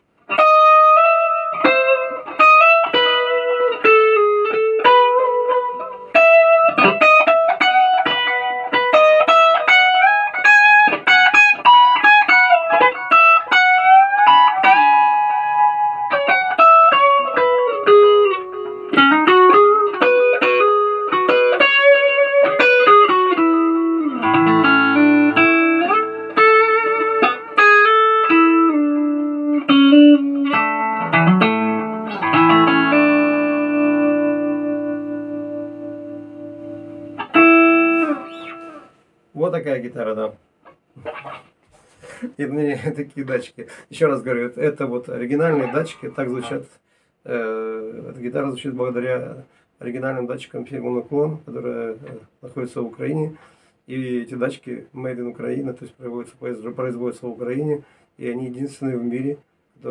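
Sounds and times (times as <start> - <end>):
electric guitar melody: 0.0 - 39.0, 40.6 - 42.3, 45.3 - 46.6.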